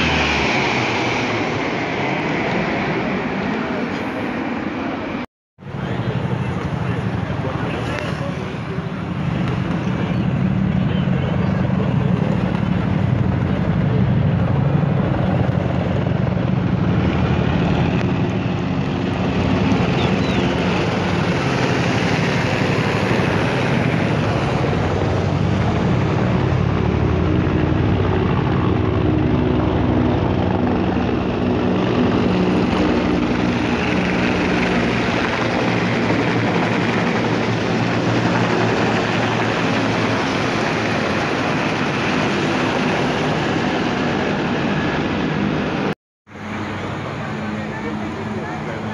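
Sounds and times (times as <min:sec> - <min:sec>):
helicopter rotors beating: 0:00.0 - 0:48.9.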